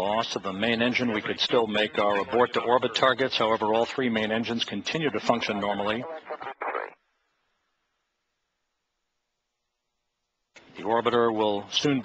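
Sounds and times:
man speaking: 0.0 - 6.9, 10.7 - 12.0.

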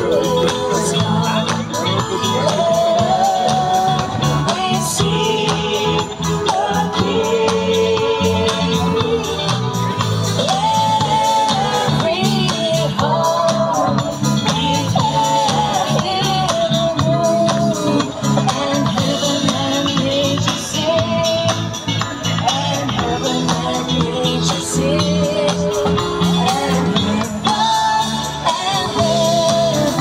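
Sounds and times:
band accompaniment: 0.0 - 30.0
drum kit beat: 0.0 - 30.0
person singing: 0.0 - 30.0.

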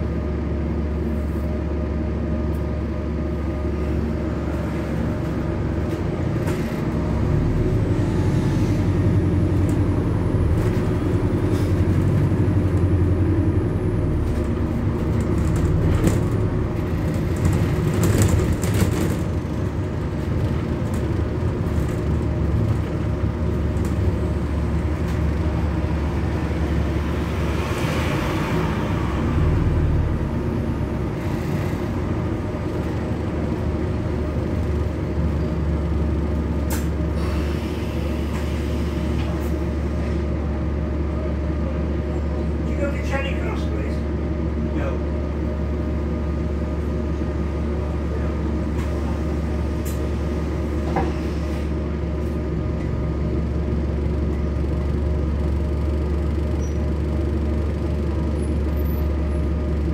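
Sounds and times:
bus drivetrain hum: 0.0 - 59.9.

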